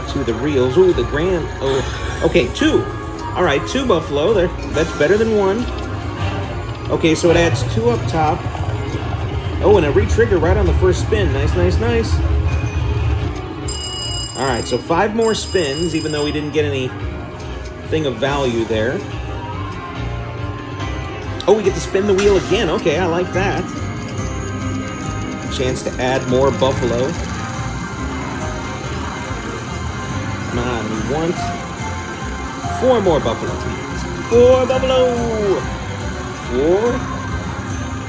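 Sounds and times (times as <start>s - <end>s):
slot machine bonus music: 0.2s - 19.2s, 21.0s - 35.8s
bell-like chime tones: 13.6s - 16.9s
casino din: 13.7s - 16.6s
slot reels spinning: 13.7s - 16.7s.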